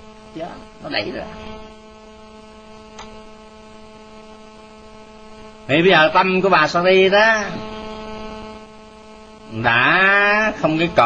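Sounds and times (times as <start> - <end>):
electrical hum: 0.0 - 11.0
faint click: 2.9 - 3.2.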